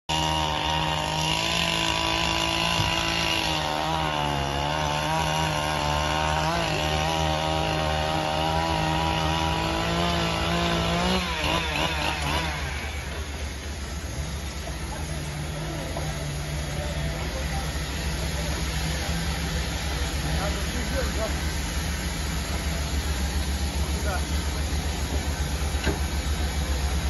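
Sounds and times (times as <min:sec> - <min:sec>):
sawmill engine cutting log: 0:00.1 - 0:27.0.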